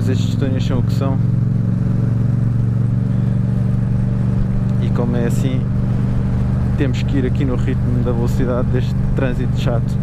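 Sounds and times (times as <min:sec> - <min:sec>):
motorcycle engine running: 0:00.0 - 0:10.0
traffic: 0:00.0 - 0:10.0.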